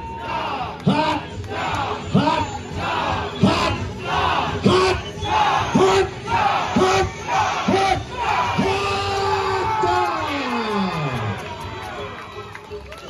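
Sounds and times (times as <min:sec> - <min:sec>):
crowd chanting in unison: 0:00.1 - 0:08.8.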